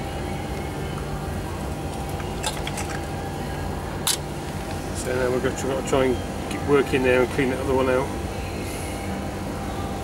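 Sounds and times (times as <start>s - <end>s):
low machinery hum: 0.0s - 10.0s.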